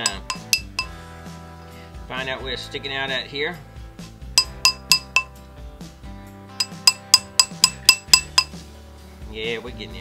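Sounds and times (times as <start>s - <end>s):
mallet tapping metal mandrel: 0.0s - 1.0s, 4.4s - 5.3s, 6.6s - 8.6s.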